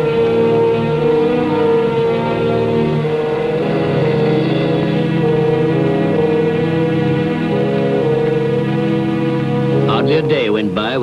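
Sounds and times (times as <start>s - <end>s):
film score sustained chords: 0.0s - 11.0s.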